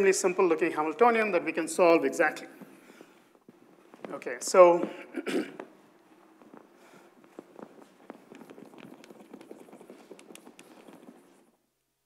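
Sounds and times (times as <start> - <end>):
low room hiss: 0.0 - 12.0
small taps and knocks: 7.2 - 11.4.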